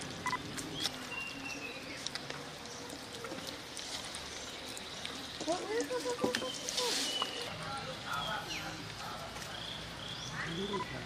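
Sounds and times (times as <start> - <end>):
lemur chirp: 9.5 - 11.0.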